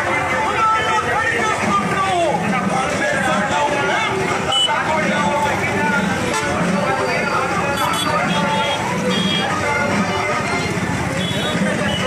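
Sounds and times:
passing motorbikes and traffic: 0.0 - 12.0
people talking and calling out: 0.0 - 12.0.

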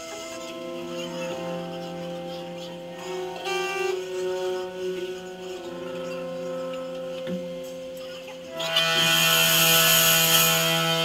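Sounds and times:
amplified guitar ringing: 0.0 - 11.0
cymbals hissing: 0.0 - 11.0
harsh sustained guitar chord: 0.0 - 11.0.

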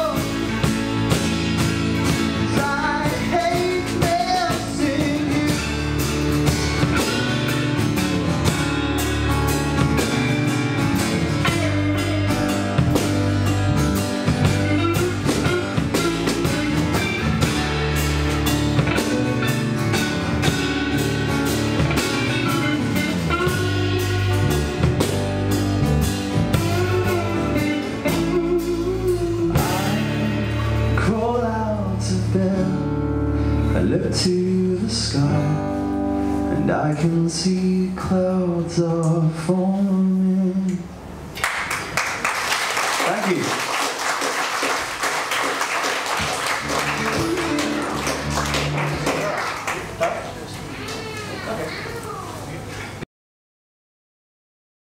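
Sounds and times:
drum kit: 0.0 - 32.8, 43.0 - 50.1
electric bass: 0.0 - 41.4, 46.0 - 50.0
electric guitar: 0.0 - 42.0, 44.8 - 53.0
acoustic guitar: 0.0 - 42.4, 43.1 - 53.0.

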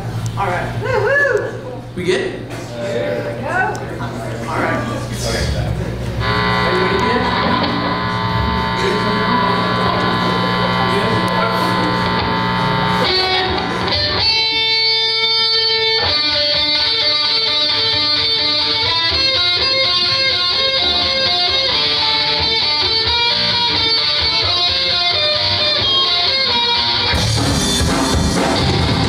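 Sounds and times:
electric guitar through amplifier: 4.8 - 29.0.

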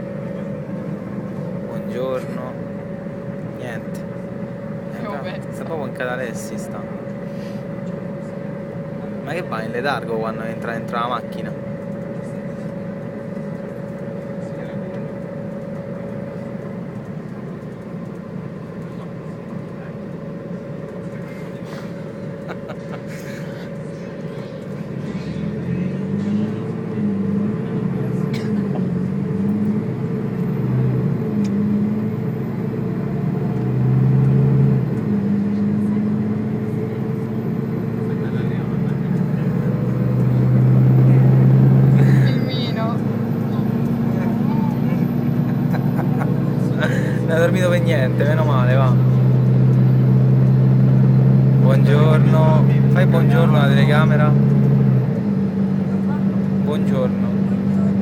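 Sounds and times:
bus engine: 0.0 - 58.0
road noise: 0.0 - 58.0.

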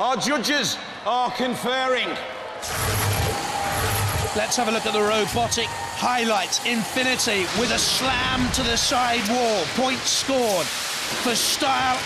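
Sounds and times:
low machinery hum: 2.6 - 11.2
hiss-like machinery noise: 2.6 - 12.0.

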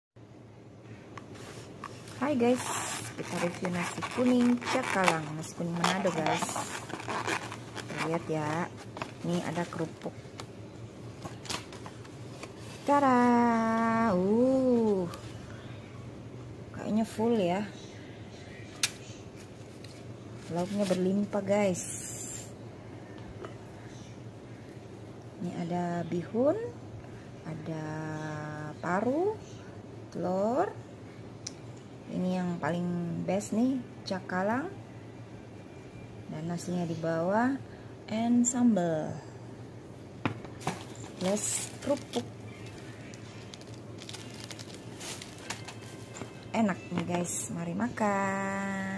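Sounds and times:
faint background hum: 0.2 - 48.9
plastic packet crinkling: 1.8 - 10.0, 40.6 - 46.5.

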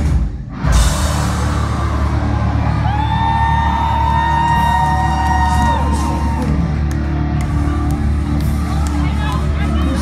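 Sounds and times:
metalcore band playing loudly: 0.0 - 10.0.

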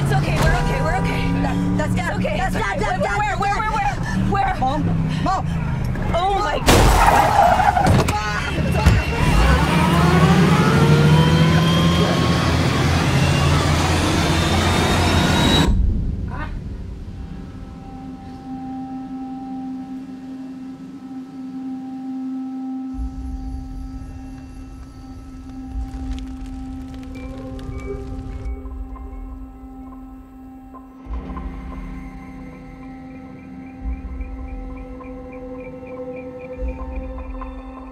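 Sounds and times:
low suspense score drone: 0.0 - 6.8, 7.5 - 37.9
noisy rush with rising tones: 8.6 - 37.9.

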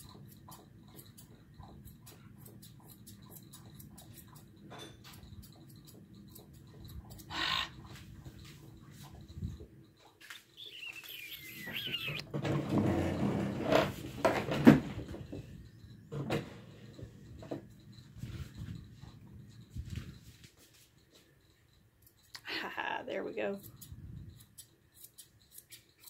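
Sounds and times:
grooming shears snipping: 0.1 - 4.5, 23.6 - 26.0
thin falling squeak: 10.6 - 13.9.

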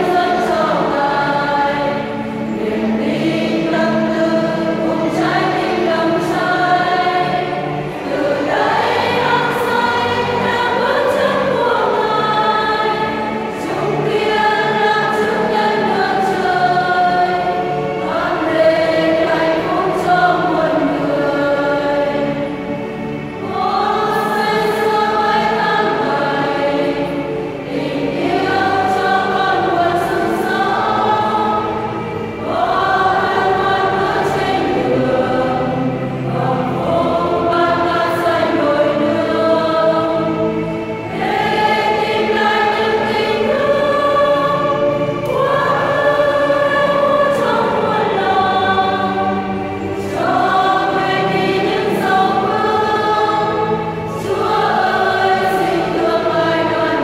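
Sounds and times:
women's choir singing a hymn: 0.0 - 57.0.

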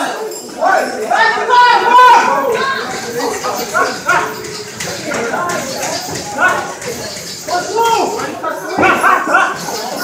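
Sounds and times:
voices talking and calling: 0.0 - 10.0.

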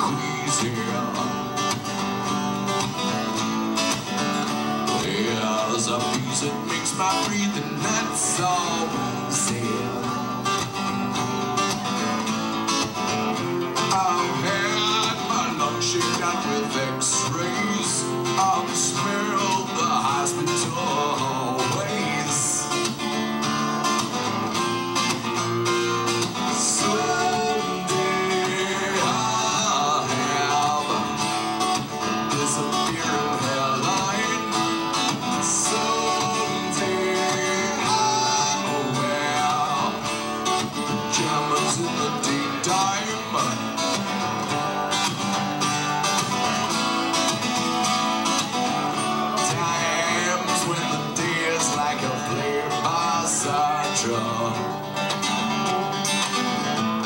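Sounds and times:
man singing: 0.0 - 1.9, 4.8 - 10.8, 13.6 - 24.2, 25.3 - 46.3, 48.4 - 55.5
strummed acoustic guitar: 0.0 - 57.0.

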